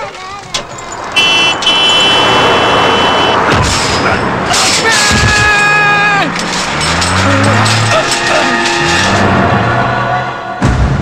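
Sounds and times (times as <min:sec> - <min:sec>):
approaching vehicle rushing: 0:00.4 - 0:04.8
vehicle horn blasts: 0:01.2 - 0:03.5.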